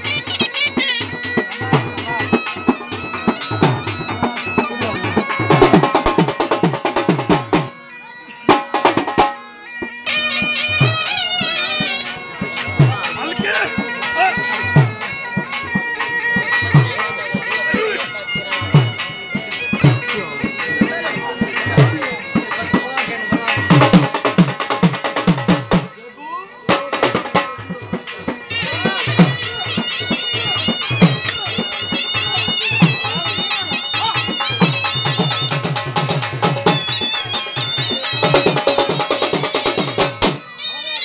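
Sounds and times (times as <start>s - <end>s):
drum beats: 0.0s - 41.0s
reed pipe melody: 0.0s - 41.0s.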